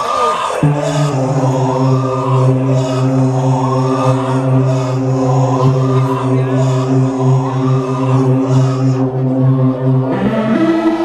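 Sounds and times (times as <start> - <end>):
loud club dance music: 0.6 - 11.0.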